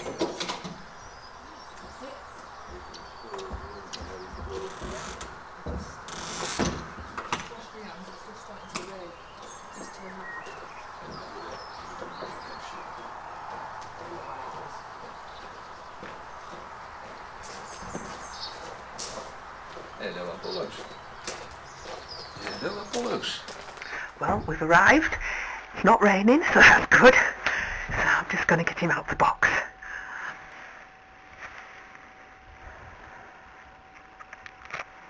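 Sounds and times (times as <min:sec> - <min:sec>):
birds chirping: 0:00.0 - 0:31.3
door flap knocking and clattering: 0:03.4 - 0:07.5.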